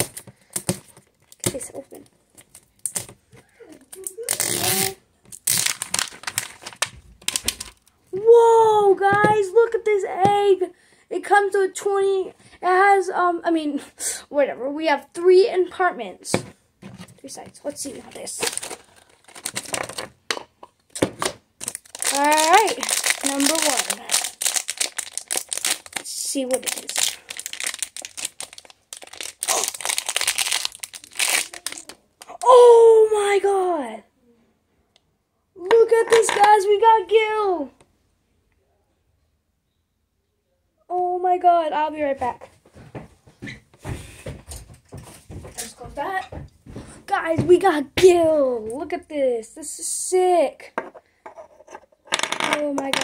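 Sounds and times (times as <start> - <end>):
plastic wrapper crinkling: 3.8 - 8.0, 17.7 - 32.4.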